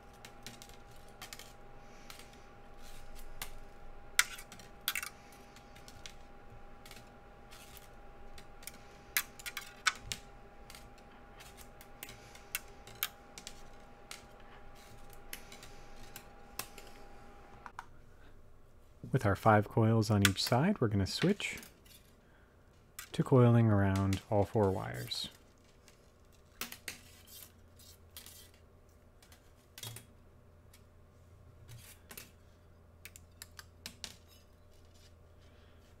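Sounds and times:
faint high hum: 0:00.0 - 0:36.0.

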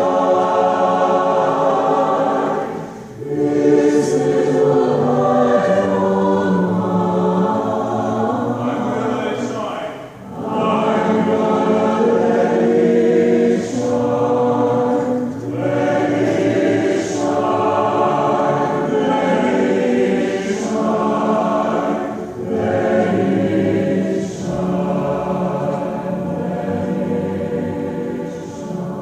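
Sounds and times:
choir singing chorale: 0:00.0 - 0:29.0.

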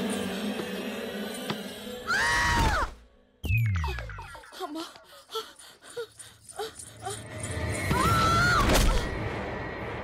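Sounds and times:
woman gasping and whimpering: 0:04.4 - 0:07.4.

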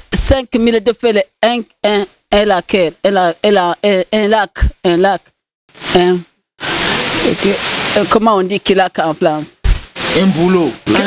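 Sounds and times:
loud static hiss: 0:05.7 - 0:11.0.

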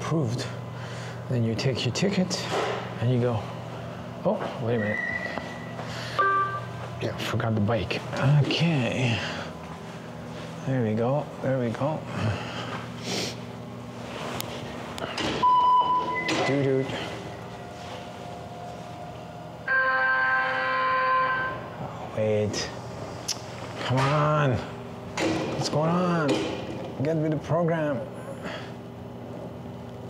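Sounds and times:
steady low hum: 0:00.0 - 0:30.0
higher ringing tones: 0:04.8 - 0:06.8, 0:15.4 - 0:21.8
short electronic beep: 0:19.7 - 0:21.6.

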